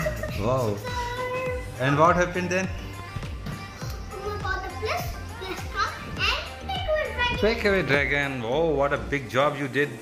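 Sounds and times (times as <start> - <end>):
young boy talking: 0.1 - 1.7, 4.1 - 7.8.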